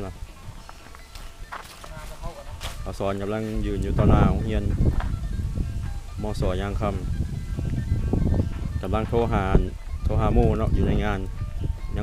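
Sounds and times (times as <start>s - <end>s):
faint voices: 0.0s - 12.0s
footsteps on dirt road: 0.0s - 12.0s.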